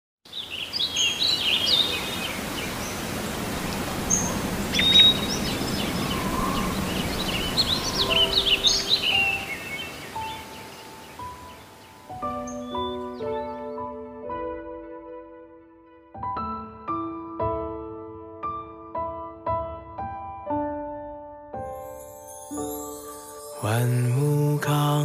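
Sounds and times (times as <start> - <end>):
birds chirping: 0.3 - 13.9
soft piano melody: 1.8 - 25.0.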